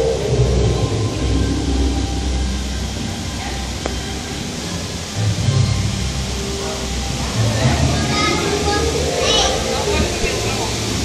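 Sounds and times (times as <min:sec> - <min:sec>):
steady noisy rumble: 0:00.0 - 0:11.0.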